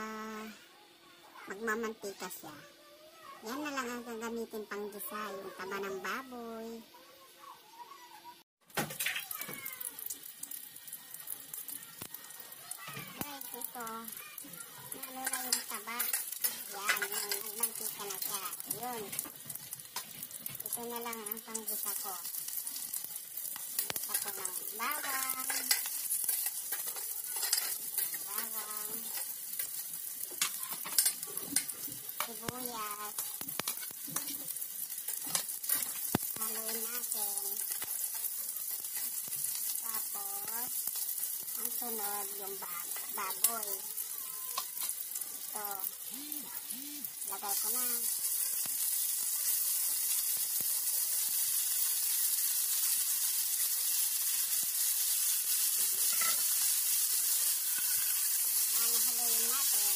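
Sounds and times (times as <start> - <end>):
garlic sizzling in fat: 0.0 - 59.9
metal spoon scraping pan: 15.0 - 18.3, 23.8 - 29.8, 56.0 - 56.6.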